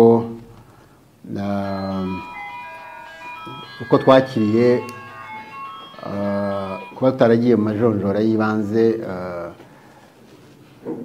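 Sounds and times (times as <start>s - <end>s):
faint electronic tune: 1.4s - 8.1s.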